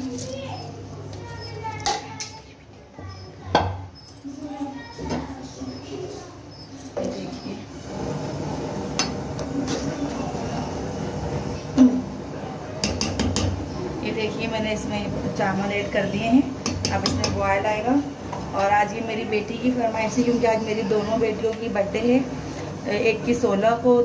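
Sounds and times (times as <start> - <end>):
sharp knocks on pot: 12.8 - 13.6.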